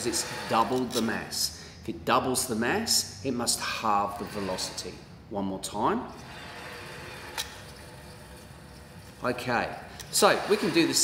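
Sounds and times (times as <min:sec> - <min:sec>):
cart rolling on metal track: 0:00.0 - 0:01.1, 0:04.0 - 0:05.0, 0:06.1 - 0:11.0.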